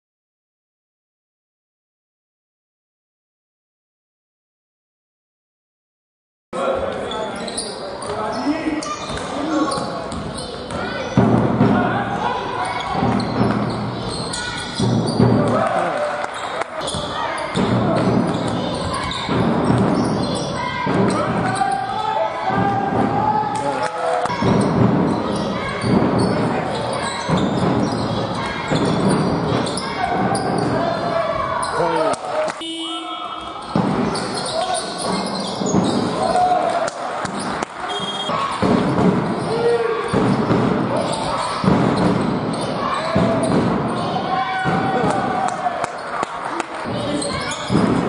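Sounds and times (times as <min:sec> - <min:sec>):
indistinct voices: 0:06.6 - 0:48.0
players shouting with echo: 0:08.1 - 0:48.0
basketball bouncing on wooden court: 0:08.9 - 0:15.7, 0:16.8 - 0:21.8, 0:24.3 - 0:31.5, 0:33.5 - 0:36.6, 0:37.2 - 0:45.5, 0:46.8 - 0:48.0.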